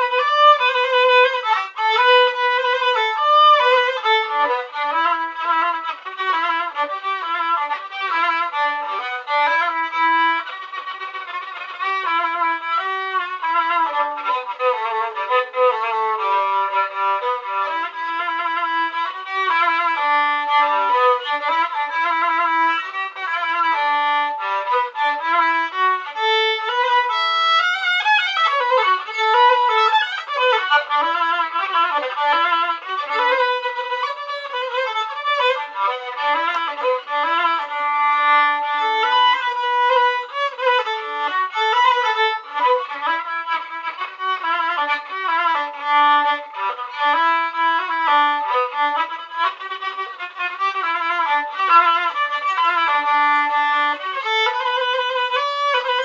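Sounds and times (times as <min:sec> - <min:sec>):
violin melody: 0:00.0 - 0:56.0.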